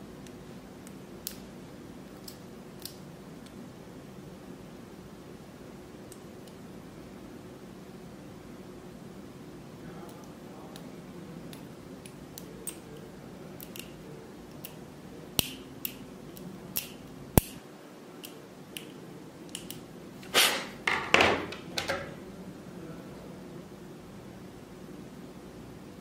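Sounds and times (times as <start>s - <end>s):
plastic parts clicking together: 13.6s - 14.8s.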